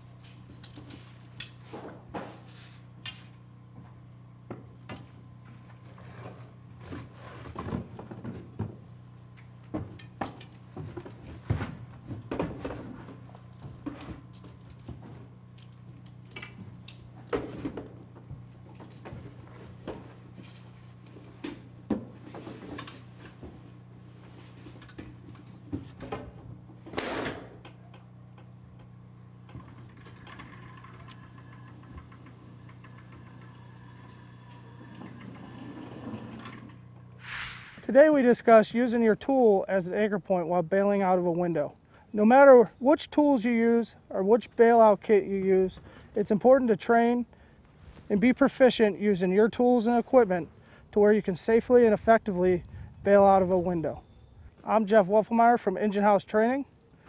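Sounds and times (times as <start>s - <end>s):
steady low hum: 0.0s - 57.0s
clicks and clinks of gear: 14.0s - 17.6s, 18.5s - 19.2s.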